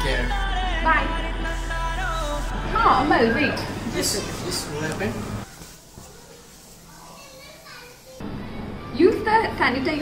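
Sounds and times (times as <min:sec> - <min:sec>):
background music: 0:00.0 - 0:03.2
faint voices with children: 0:05.4 - 0:09.3.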